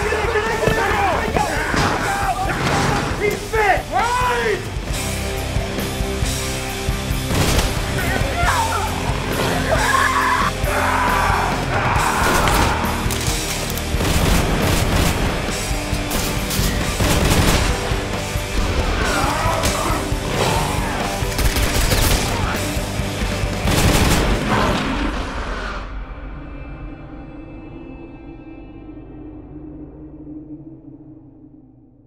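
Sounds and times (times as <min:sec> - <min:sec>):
dramatic trailer music: 0:00.0 - 0:32.0
rapid gunfire: 0:07.2 - 0:08.0, 0:13.9 - 0:18.1, 0:21.2 - 0:22.6, 0:23.6 - 0:24.8.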